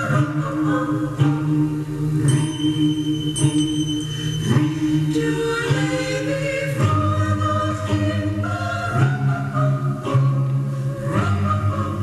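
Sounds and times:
choir music from radio speaker: 0.0 - 12.0.

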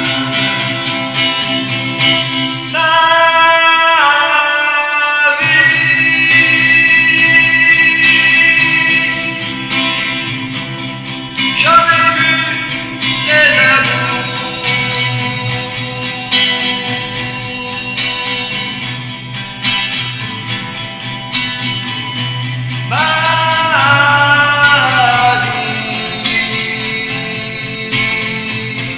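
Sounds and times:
acoustic guitar: 0.0 - 28.9
man singing long notes: 2.7 - 10.2, 11.4 - 19.0, 22.9 - 28.9.

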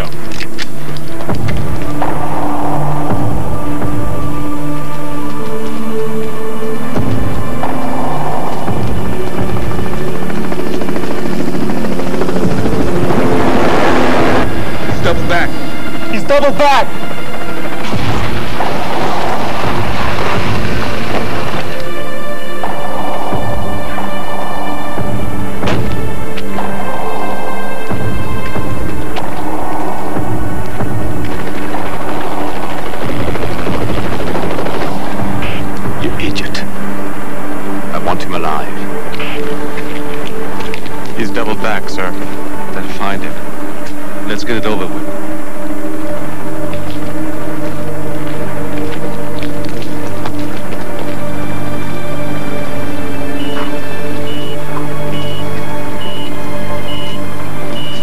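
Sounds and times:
helicopter noise: 0.0 - 45.2, 46.0 - 58.0
orchestral music with held tones: 0.0 - 58.0.

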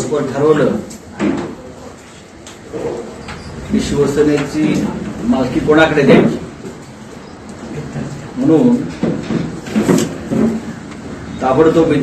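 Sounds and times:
man talking: 2.7 - 6.6, 7.6 - 9.0, 11.4 - 12.0.

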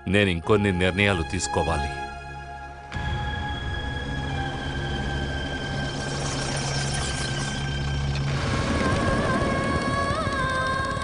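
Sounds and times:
synthesizer drone: 2.1 - 11.0
higher synthesizer tone: 2.9 - 8.3
low rumble: 2.9 - 11.0.

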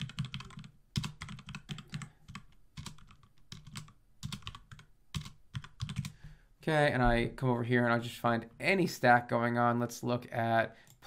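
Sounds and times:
typing on computer keyboard: 0.0 - 6.2.

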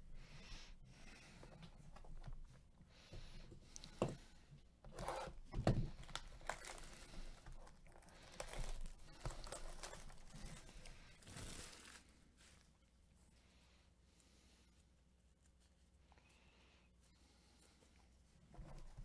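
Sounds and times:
plastic wrap tearing and crinkling: 5.9 - 12.4.

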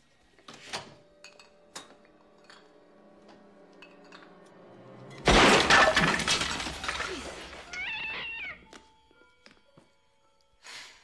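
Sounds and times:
cat meowing: 7.7 - 8.7.

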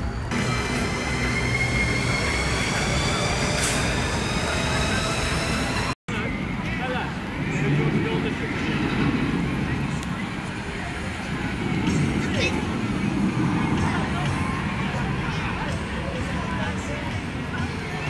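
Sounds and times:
distant voices: 0.0 - 18.0
roller coaster rumble: 0.0 - 18.0
roller coaster wheels whining: 0.0 - 18.0.

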